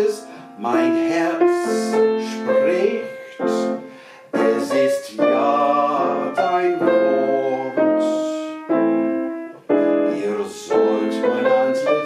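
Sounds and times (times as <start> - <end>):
slow piano chords: 0.0 - 12.0.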